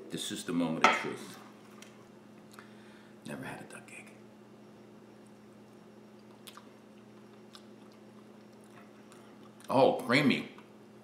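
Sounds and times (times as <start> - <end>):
faint chewing: 5.2 - 9.7
soft mouth clicks: 6.2 - 9.7.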